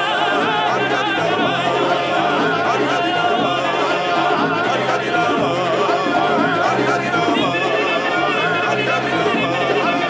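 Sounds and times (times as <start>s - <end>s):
men singing together: 0.0s - 10.0s.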